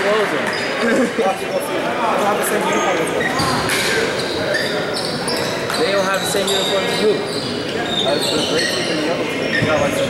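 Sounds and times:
many voices echoing: 0:00.0 - 0:10.0
sneaker squeaks on hardwood: 0:03.2 - 0:10.0.

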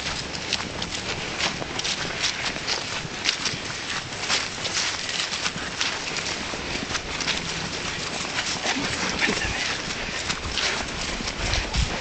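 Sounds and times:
footsteps crunching through dry leaves: 0:00.0 - 0:12.0.

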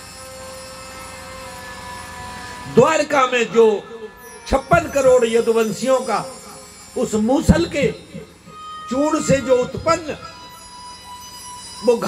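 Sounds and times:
soft music of long held notes: 0:00.0 - 0:12.0.

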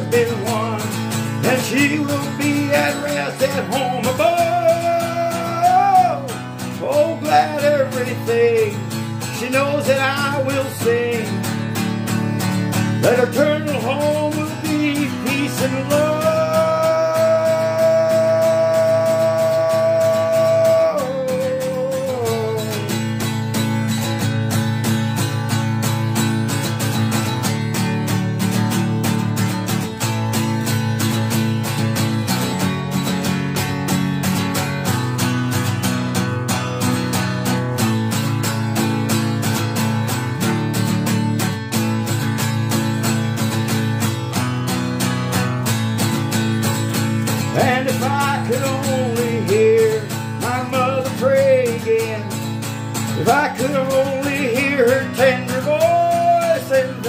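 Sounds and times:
acoustic guitar strumming: 0:00.0 - 0:57.0
man singing held note: 0:13.7 - 0:22.9.

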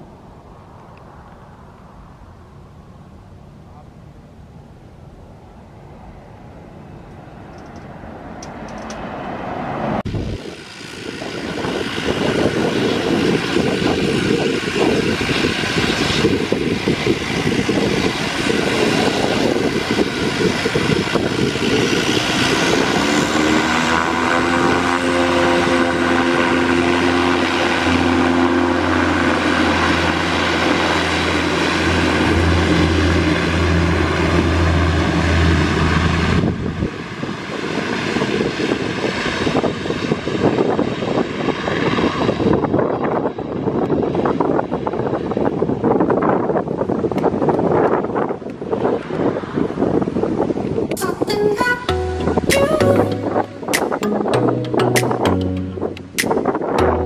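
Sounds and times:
distant turboprop airliner climbing: 0:00.0 - 0:51.0
turboprop engines running loud: 0:10.0 - 0:51.0.

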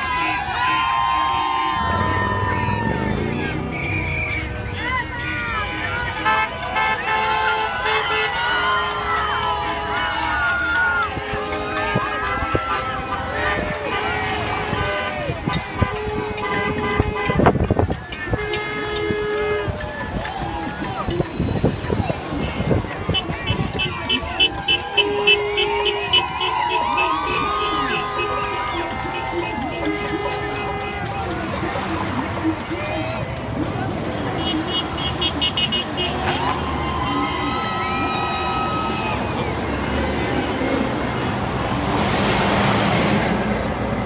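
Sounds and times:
crowd background noise: 0:00.0 - 0:44.0
people shouting and cheering: 0:00.0 - 0:44.0
car horns blasting: 0:01.1 - 0:43.9.

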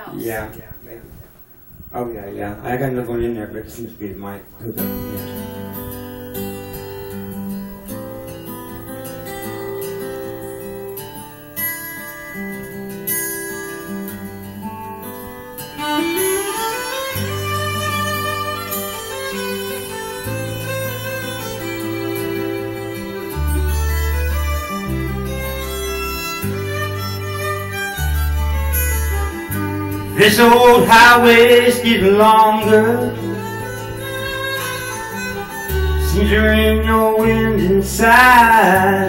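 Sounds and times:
acoustic guitar: 0:00.0 - 0:39.0
fiddle: 0:15.1 - 0:39.0.

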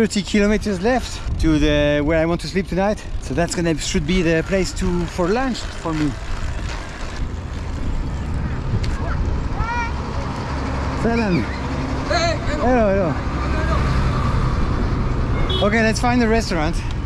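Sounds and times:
street traffic rumble: 0:00.0 - 0:17.0
truck engine: 0:02.8 - 0:17.0.

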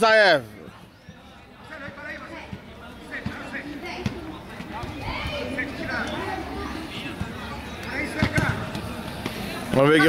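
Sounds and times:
ball being kicked: 0:08.1 - 0:08.9.

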